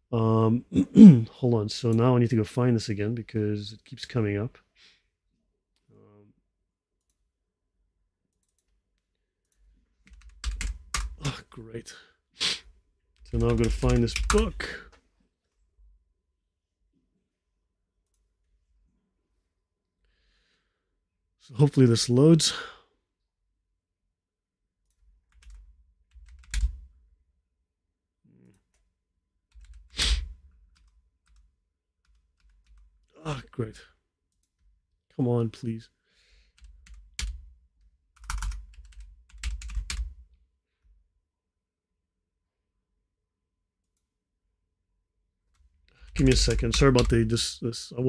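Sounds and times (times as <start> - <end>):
low voice murmur: 0.7 - 1.3
typing on computer keyboard: 10.0 - 11.3, 13.2 - 14.6, 25.0 - 26.9, 29.5 - 33.1, 36.6 - 37.5, 38.2 - 40.2, 46.1 - 47.3.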